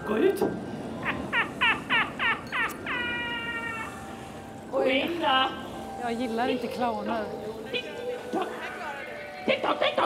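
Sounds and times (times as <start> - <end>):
high-pitched falsetto cackle: 1.0 - 4.0.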